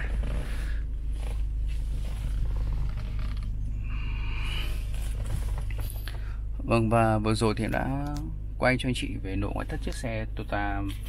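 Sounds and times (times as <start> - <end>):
steady low hum: 0.0 - 11.0
creaks and clicks of handling: 2.0 - 3.6.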